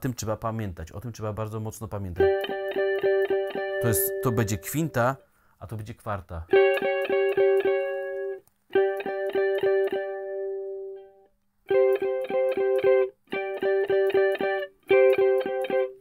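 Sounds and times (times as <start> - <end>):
electric guitar picking dyads: 2.2 - 5.2, 6.5 - 16.0.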